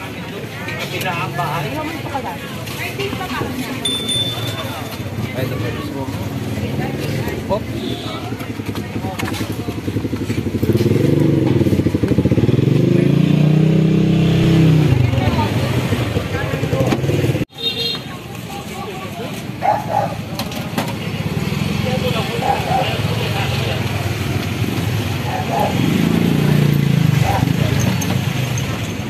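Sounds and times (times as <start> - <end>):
street traffic noise: 0.0 - 29.0
motorcycle engine revving: 5.1 - 17.5, 19.8 - 29.0.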